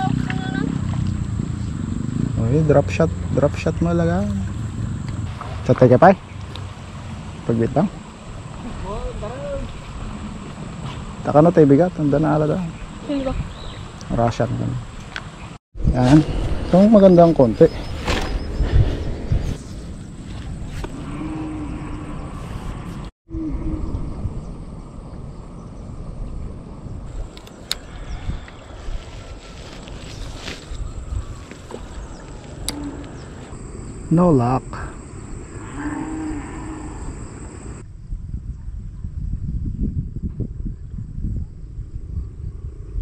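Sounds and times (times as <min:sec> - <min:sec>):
wind rumbling on microphone: 0:00.0 - 0:43.0.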